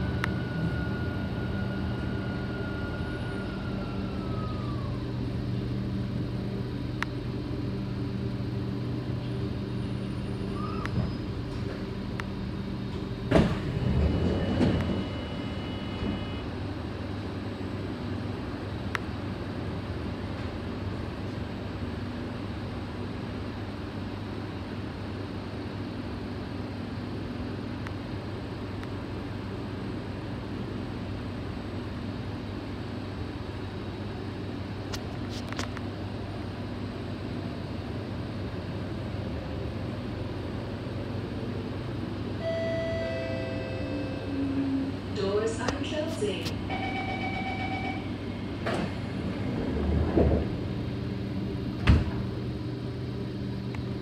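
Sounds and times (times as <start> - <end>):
train whine falling in pitch: 0.0 - 5.2, 42.3 - 45.1, 46.6 - 49.0
train humming steadily: 0.0 - 54.0
train doors opening clunk: 12.8 - 16.3, 48.5 - 50.6, 51.7 - 52.4
brief high tone: 42.4 - 44.8.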